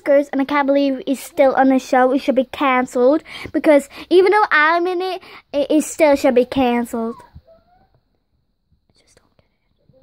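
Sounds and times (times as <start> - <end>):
faint whisper: 8.9 - 10.0.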